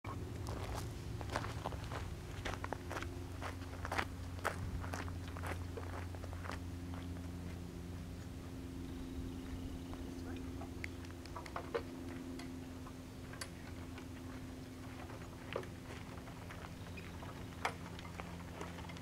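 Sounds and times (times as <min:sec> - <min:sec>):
steady low hum: 0:00.0 - 0:19.0
footsteps crunching on gravel: 0:00.4 - 0:07.6, 0:13.8 - 0:19.0.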